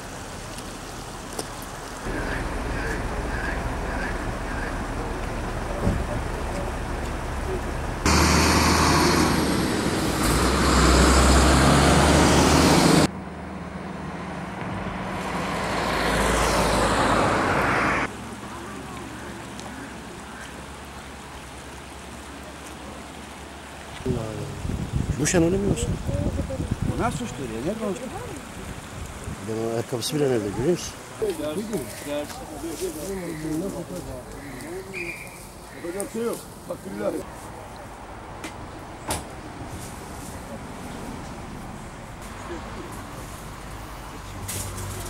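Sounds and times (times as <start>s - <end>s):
highway traffic rushing: 0.0s - 45.0s
vehicle passing by: 2.0s - 19.0s.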